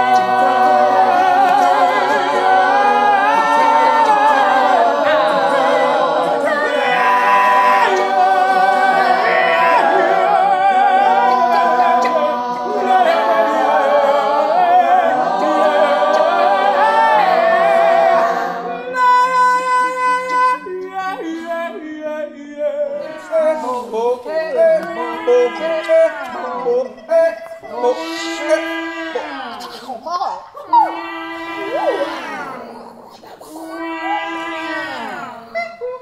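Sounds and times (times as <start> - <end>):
choir singing a cappella: 0.0 - 30.0, 30.6 - 36.0.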